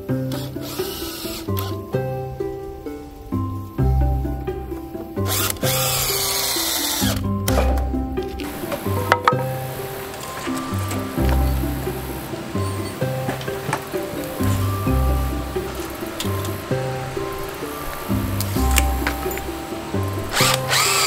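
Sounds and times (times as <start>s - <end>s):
background music with bass line: 0.0s - 21.0s
cordless drill driving into wood: 20.3s - 21.0s.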